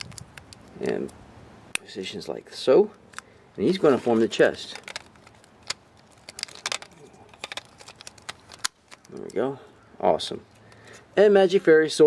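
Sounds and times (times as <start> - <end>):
plastic toy parts clicking: 4.7 - 9.4.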